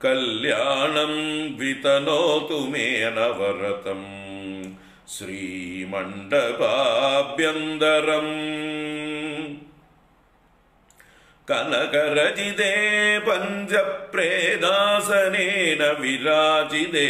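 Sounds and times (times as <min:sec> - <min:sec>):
man chanting melodically: 0:00.0 - 0:09.7, 0:11.5 - 0:17.0.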